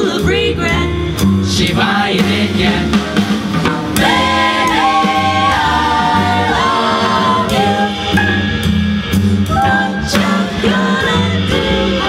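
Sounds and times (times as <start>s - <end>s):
upright bass: 0.0s - 12.0s
vocal ensemble singing in harmony: 0.0s - 12.0s.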